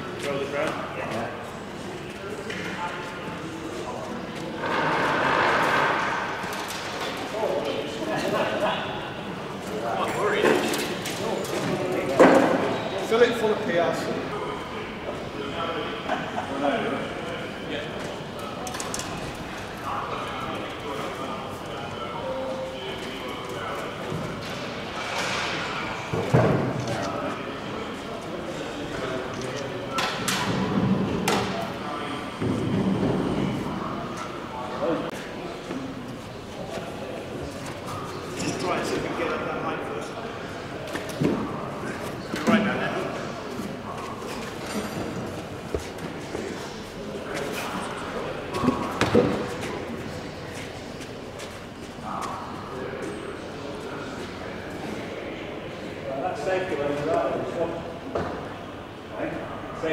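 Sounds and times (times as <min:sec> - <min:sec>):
men talking indistinctly: 0:00.0 - 0:59.9.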